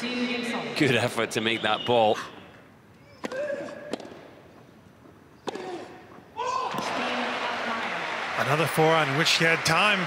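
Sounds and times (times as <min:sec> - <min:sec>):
voices and crowd noise: 0:00.0 - 0:02.5, 0:06.7 - 0:10.0.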